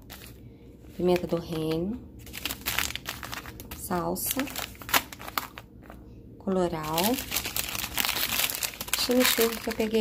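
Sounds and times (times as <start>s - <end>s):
plastic food packets crinkling: 0.0s - 10.0s.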